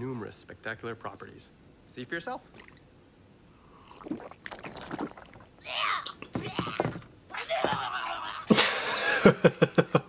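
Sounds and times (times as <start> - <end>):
cartoon character gulping: 3.8 - 7.1
gagging splutter: 3.9 - 7.8.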